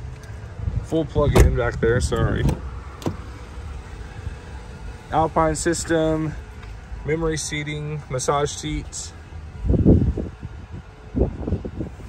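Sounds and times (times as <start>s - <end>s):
phone microphone handling rumble: 1.2s - 3.4s.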